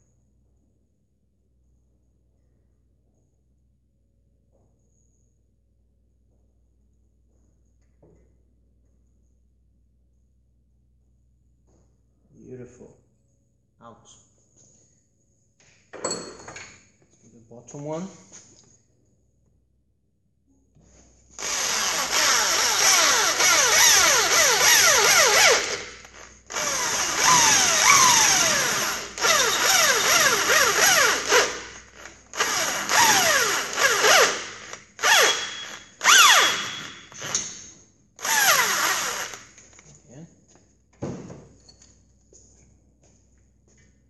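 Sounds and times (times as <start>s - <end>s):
electric drill boring: 21.4s - 37.6s, 38.2s - 39.6s
falling whistles: 27.3s - 28.6s.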